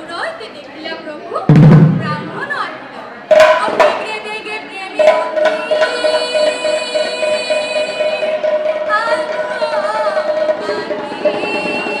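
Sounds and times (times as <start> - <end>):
sharp percussive strikes: 1.5 - 2.4, 3.3 - 4.2, 5.0 - 12.0
women singing a devotional chant: 3.4 - 12.0.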